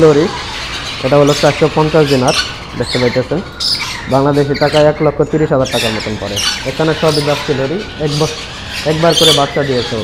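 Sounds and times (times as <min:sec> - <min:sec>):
man talking: 0:00.0 - 0:00.4, 0:01.0 - 0:03.5, 0:04.1 - 0:10.0
parrots squawking: 0:00.0 - 0:10.0.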